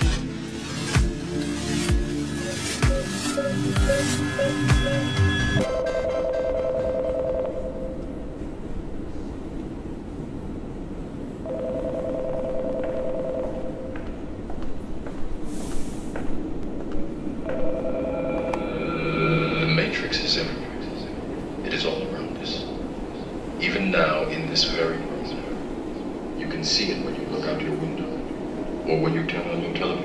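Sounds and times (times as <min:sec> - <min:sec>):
steady low rumble: 0:00.1 - 0:30.0
payphone ringing two-tone warble: 0:02.9 - 0:08.0, 0:11.5 - 0:13.9.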